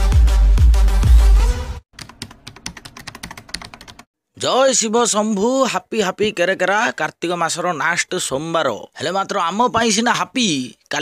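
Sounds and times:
electronic music with heavy bass: 0.0s - 1.8s
keyboard typing clicks: 2.0s - 4.1s.

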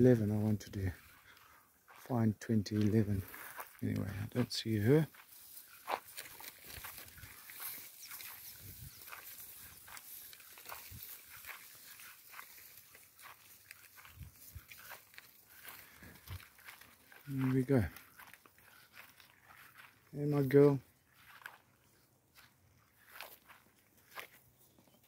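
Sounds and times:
footsteps in dry grass: 0.0s - 25.0s.

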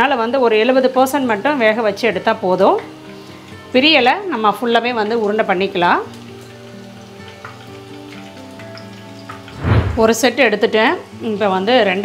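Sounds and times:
food deep-frying in oil: 0.0s - 12.0s
soft background music: 0.0s - 12.0s.

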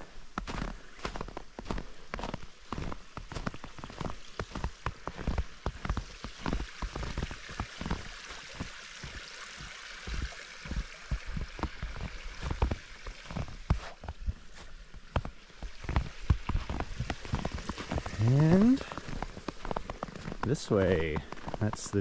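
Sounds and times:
creek water running: 0.0s - 22.0s
footsteps crunching through snow: 0.0s - 22.0s.

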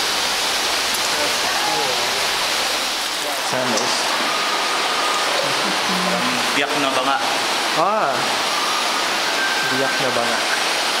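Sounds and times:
running water rushing: 0.0s - 11.0s
faint voices: 3.1s - 7.2s.

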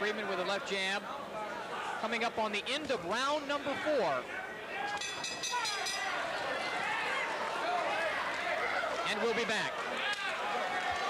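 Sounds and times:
crowd shouting and talking: 0.0s - 11.0s.

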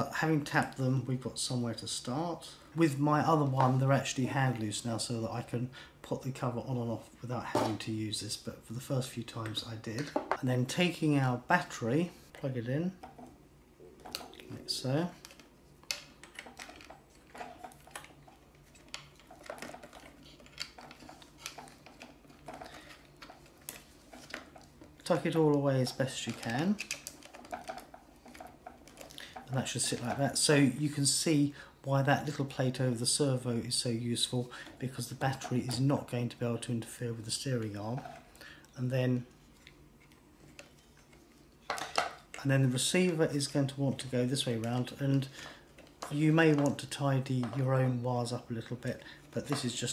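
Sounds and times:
small clicks and rustles: 15.1s - 25.2s, 25.9s - 30.1s.

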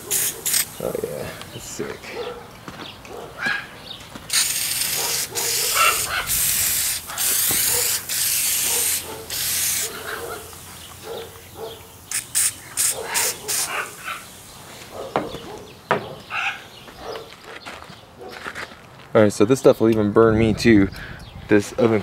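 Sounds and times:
aerosol can spraying: 0.0s - 0.9s, 4.3s - 15.4s.

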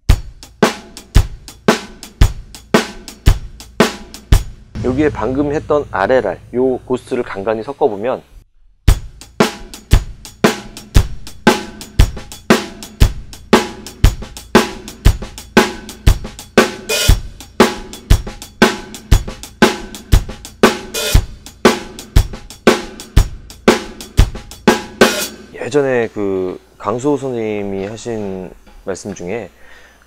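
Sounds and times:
drum kit shuffle groove: 0.0s - 7.5s, 8.9s - 25.8s
bright cymbal hit: 4.8s - 7.6s.

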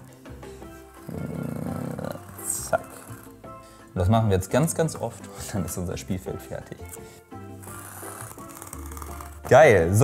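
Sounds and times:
background music: 0.0s - 10.0s
marker dragged along ruler: 0.8s - 3.4s, 7.5s - 9.7s.

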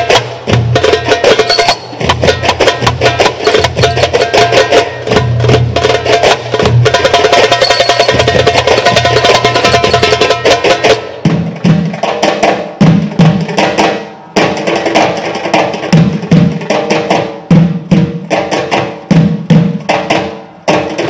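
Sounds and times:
goblet drums playing fast rhythm: 0.0s - 21.0s.

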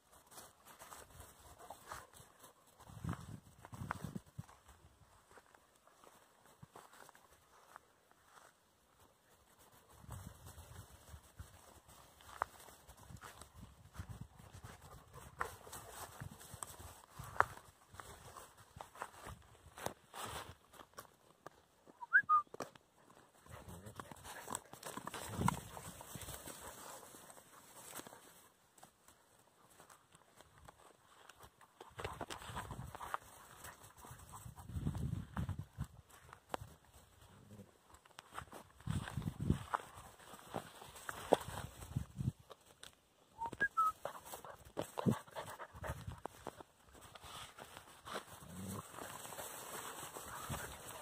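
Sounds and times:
dogs scuffling in dry grass: 0.0s - 21.8s, 23.0s - 43.0s, 43.7s - 51.0s.

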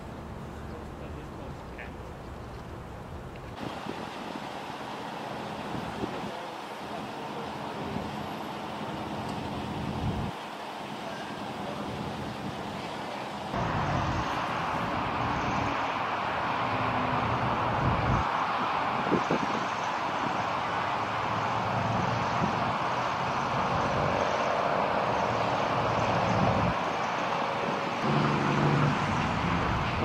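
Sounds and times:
road noise: 0.0s - 30.0s
faint voices: 4.8s - 9.1s, 10.1s - 13.6s.

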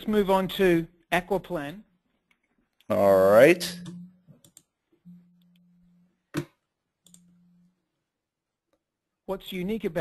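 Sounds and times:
computer mouse clicking: 4.4s - 4.7s, 6.4s - 7.3s.

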